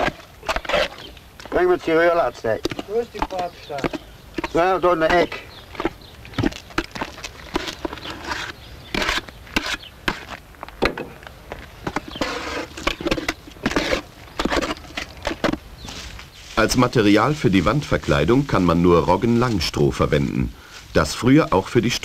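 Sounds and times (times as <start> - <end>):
voices talking: 0.0 - 10.0, 11.0 - 22.0
mortar squelching in a drum: 2.5 - 10.4, 11.6 - 16.6.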